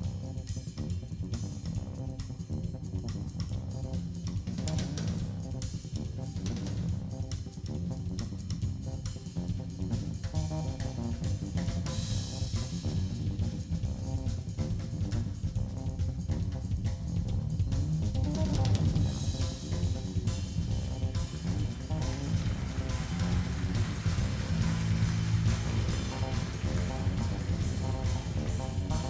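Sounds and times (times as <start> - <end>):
jazz drum kit played with sticks: 0.0 - 29.0.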